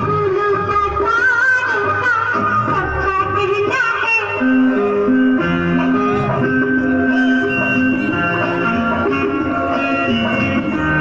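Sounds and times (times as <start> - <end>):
song over loudspeaker: 0.0 - 11.0.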